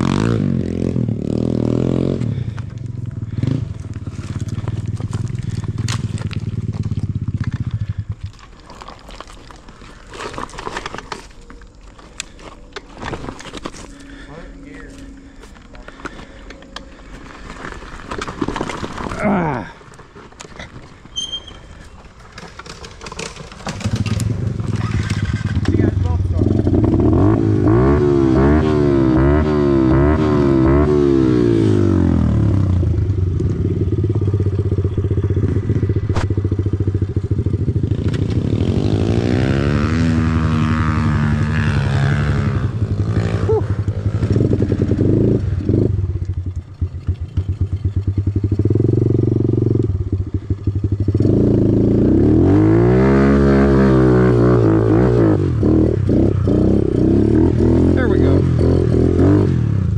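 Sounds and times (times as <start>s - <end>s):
dirt bike engine revving: 0.0s - 8.4s, 13.0s - 19.8s, 21.2s - 59.9s.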